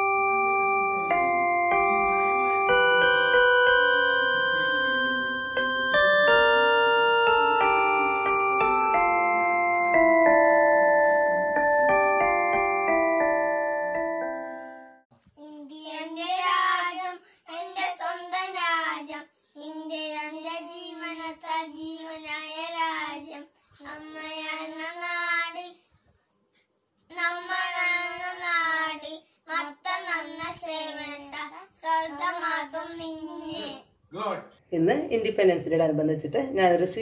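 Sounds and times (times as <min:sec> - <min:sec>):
boys singing unaccompanied: 0:15.7 - 0:25.6, 0:27.1 - 0:33.6.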